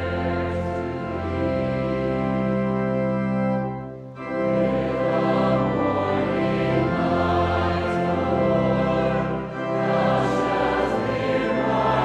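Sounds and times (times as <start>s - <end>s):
church organ playing a hymn: 0.0s - 12.0s.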